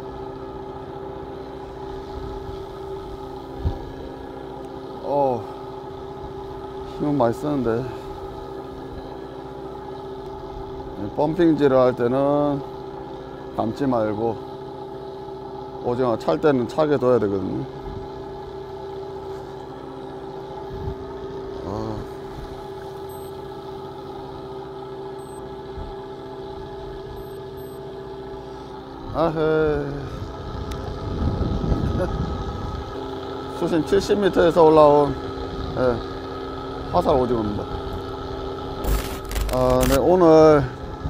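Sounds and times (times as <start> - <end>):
boat engine humming: 0.0 - 41.0.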